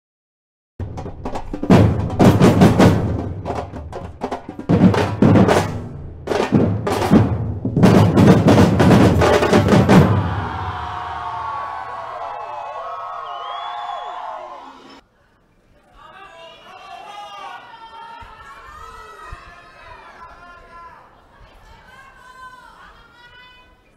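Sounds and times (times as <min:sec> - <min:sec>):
snare drum hits: 0:00.8 - 0:10.5.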